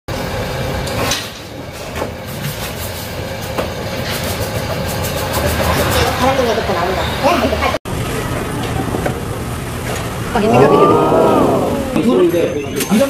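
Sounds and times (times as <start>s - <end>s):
market din: 3.5s - 13.0s.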